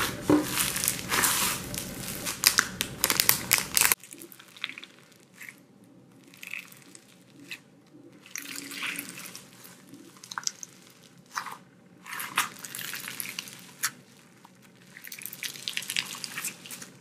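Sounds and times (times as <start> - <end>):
foam-bead slime crackling: 0.0 - 17.0
soft slime squishing: 0.0 - 17.0.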